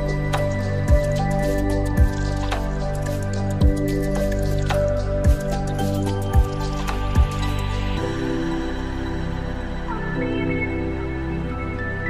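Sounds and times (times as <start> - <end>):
background music with low beat: 0.0 - 10.6.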